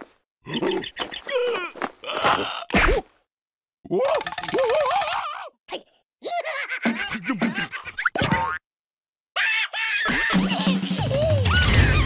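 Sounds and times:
cartoon character squeaky laughing: 0:09.4 - 0:12.0.

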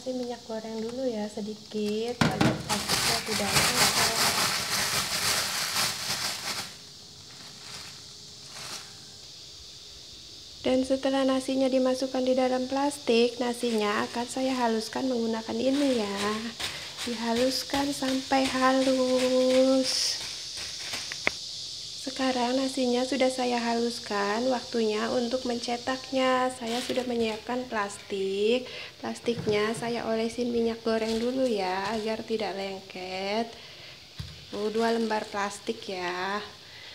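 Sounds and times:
faint hiss: 0:00.0 - 0:36.9
plastic bag rustling: 0:02.2 - 0:09.2, 0:13.6 - 0:21.3, 0:26.6 - 0:27.5, 0:30.9 - 0:32.4
plastic bag crinkling: 0:02.5 - 0:09.1.

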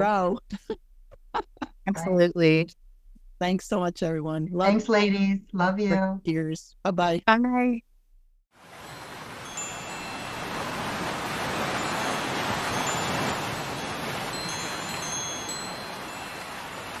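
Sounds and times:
ocean surf rushing: 0:08.6 - 0:17.0
wind chimes ringing: 0:08.8 - 0:17.0.

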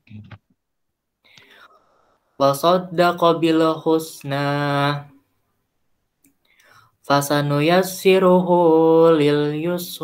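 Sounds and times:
faint breath drawn in: 0:01.2 - 0:02.4.

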